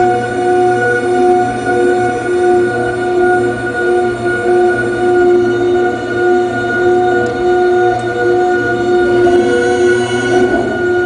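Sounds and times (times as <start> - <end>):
electronic drone of steady tones: 0.0 - 11.0
low hum: 0.0 - 11.0.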